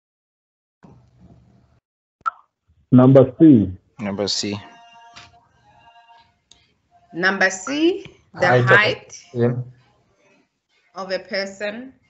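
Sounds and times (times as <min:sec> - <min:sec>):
faint low murmur: 0:03.0 - 0:04.6, 0:08.4 - 0:09.8
woman speaking: 0:07.2 - 0:09.4, 0:11.0 - 0:11.9.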